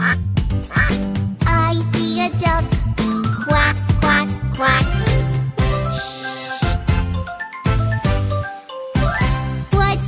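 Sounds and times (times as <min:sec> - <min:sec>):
quacking: 0:00.0 - 0:01.0
children's song music: 0:00.0 - 0:10.0.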